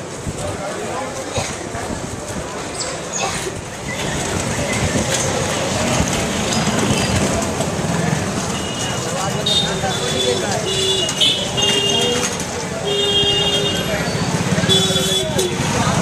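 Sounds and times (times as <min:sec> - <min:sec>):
crowd voices: 0:00.0 - 0:16.0
motor vehicles: 0:00.0 - 0:16.0
vehicle horns honking: 0:08.6 - 0:15.7.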